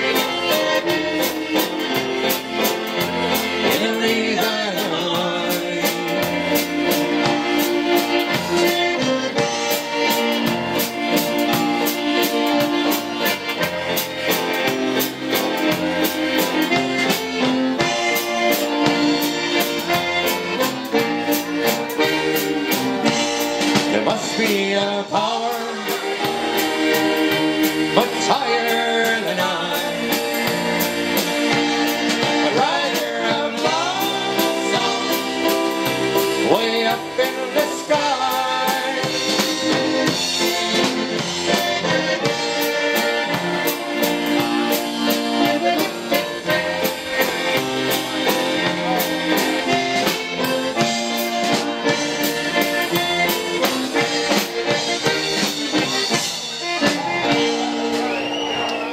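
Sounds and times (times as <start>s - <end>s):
concertina playing a waltz: 0.0s - 24.6s, 25.3s - 58.4s
live band with keyboard guitar drums: 0.0s - 58.9s.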